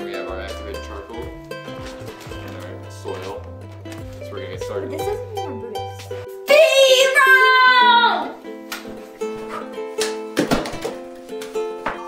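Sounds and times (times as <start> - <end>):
plucked string music: 0.0 - 12.0.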